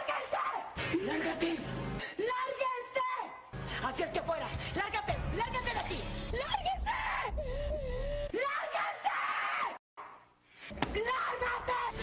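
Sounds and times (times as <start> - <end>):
person shouting: 10.9 - 12.0.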